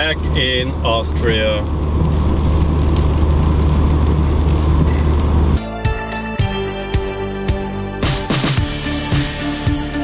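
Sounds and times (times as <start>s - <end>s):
engine and road rumble: 0.0s - 10.0s
music: 5.5s - 10.0s.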